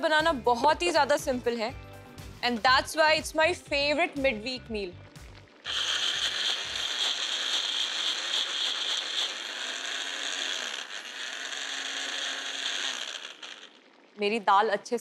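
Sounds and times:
electric mixer grinder running: 0:05.7 - 0:14.2.

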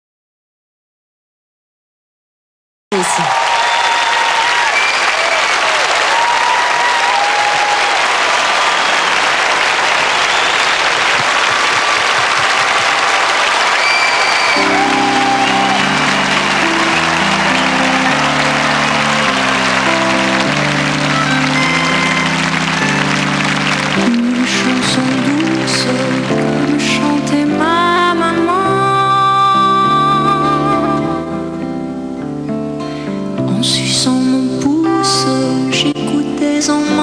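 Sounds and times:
shouts from crowd: 0:02.9 - 0:23.9
audience applauding and cheering: 0:02.9 - 0:27.6
short whistles: 0:13.8 - 0:14.6
band playing sustained chords: 0:14.6 - 0:27.4.

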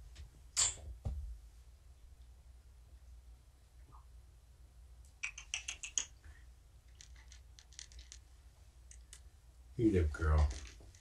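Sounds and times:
cat crunching dry food: 0:06.9 - 0:08.2.

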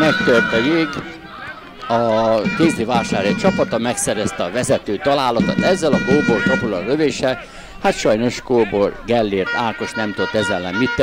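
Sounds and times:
narrator speaking: 0:01.9 - 0:07.2.

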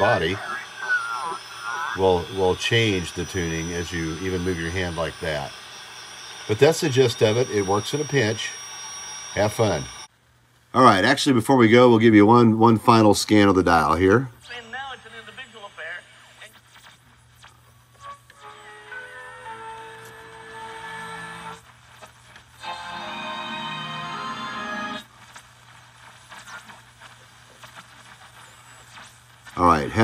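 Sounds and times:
radio music and voices: 0:00.0 - 0:10.1, 0:10.8 - 0:17.6, 0:24.9 - 0:30.0
radio static: 0:00.0 - 0:10.1, 0:10.8 - 0:17.6, 0:19.8 - 0:23.6, 0:24.5 - 0:30.0
radio tuning whistles: 0:00.0 - 0:10.1, 0:13.8 - 0:30.0.

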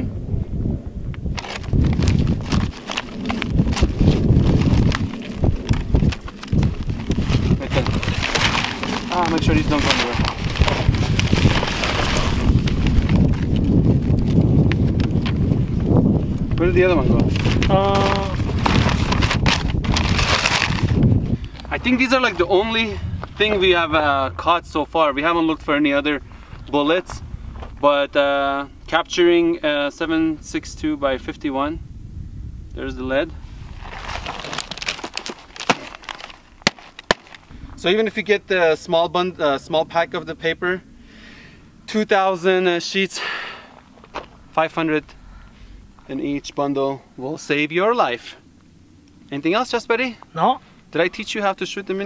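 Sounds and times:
wind rumble on microphone: 0:00.0 - 0:42.8
paper sheets rustling: 0:01.4 - 0:14.4, 0:17.0 - 0:21.1, 0:33.6 - 0:37.5.

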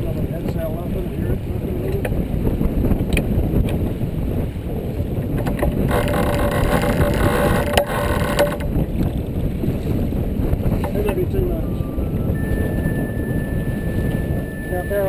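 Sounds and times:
water rushing along hull: 0:00.0 - 0:15.0
wind buffeting microphone: 0:00.0 - 0:15.0
steady pitched hum: 0:05.8 - 0:08.8, 0:11.7 - 0:15.0.

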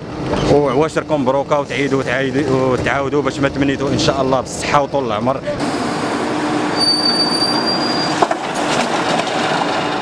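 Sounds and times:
high squeal: 0:06.7 - 0:08.2.

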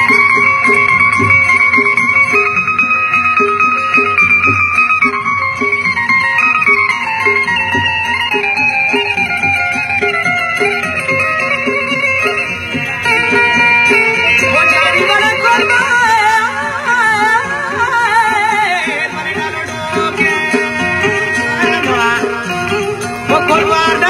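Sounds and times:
folk music with strings: 0:00.0 - 0:24.0.

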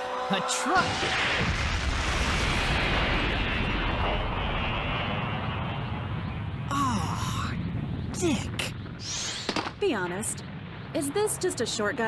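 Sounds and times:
cartoon explosion rumbling blast: 0:00.8 - 0:05.4.

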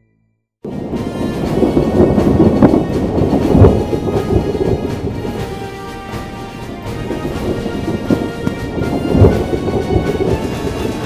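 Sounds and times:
thunder rumble: 0:00.6 - 0:11.0
quiet background music: 0:00.7 - 0:11.0
steady rain: 0:00.7 - 0:11.0.

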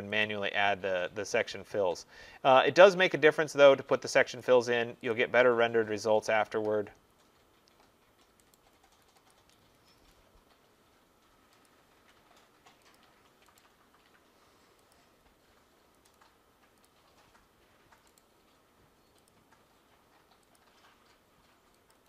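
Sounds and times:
computer mouse clicks: 0:07.2 - 0:22.0.

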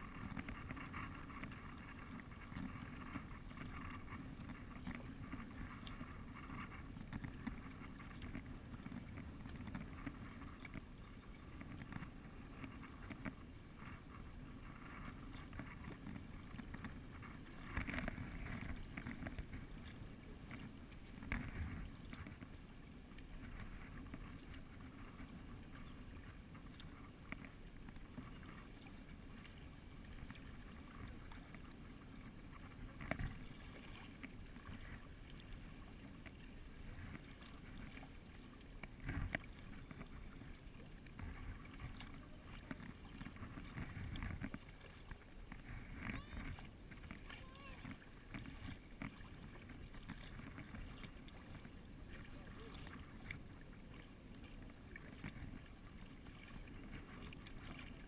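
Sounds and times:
paddle splash: 0:00.0 - 0:58.0
water along kayak hull: 0:00.0 - 0:58.0.

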